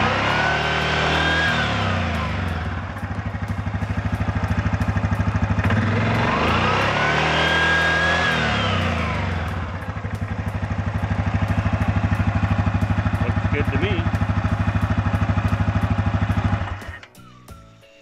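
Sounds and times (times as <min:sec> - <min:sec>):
engine revving and idling: 0:00.0 - 0:17.0
clutch and drive belt whine: 0:00.0 - 0:17.1.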